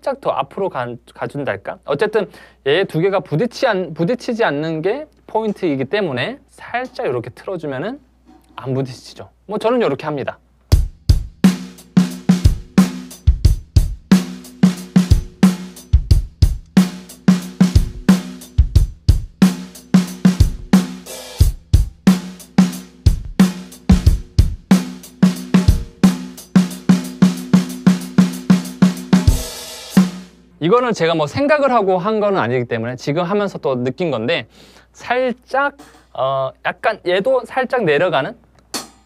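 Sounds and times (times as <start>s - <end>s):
hi-hat sixteenths: 10.8s - 30.4s
kick drum: 12.5s - 14.1s, 16.0s - 16.8s, 17.8s - 19.4s, 21.4s - 22.0s, 23.1s - 24.7s.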